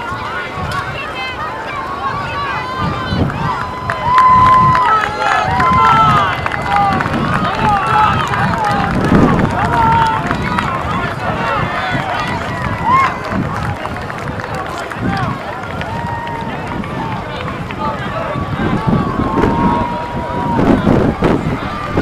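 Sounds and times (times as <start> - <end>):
crowd shouting and cheering: 0.0 - 22.0.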